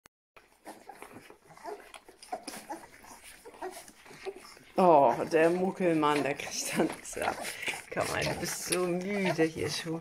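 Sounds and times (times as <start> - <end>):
puppies squeaking and whimpering: 0.4 - 10.0.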